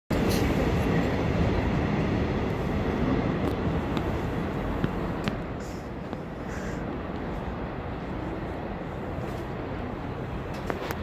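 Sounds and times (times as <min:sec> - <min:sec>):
train rumbling on rails: 0:00.1 - 0:11.0.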